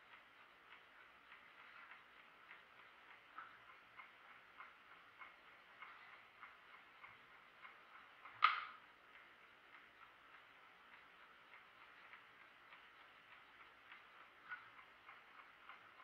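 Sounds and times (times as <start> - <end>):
mechanical clock ticking: 0.0 - 16.0.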